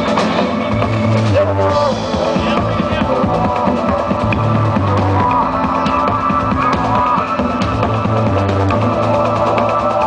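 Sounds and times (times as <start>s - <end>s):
acoustic drum kit: 0.0s - 10.0s
electronic backing track with bass: 0.0s - 10.0s.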